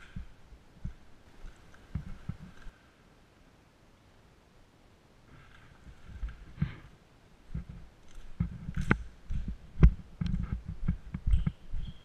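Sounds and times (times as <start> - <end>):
footsteps on concrete floor: 7.5 - 12.0.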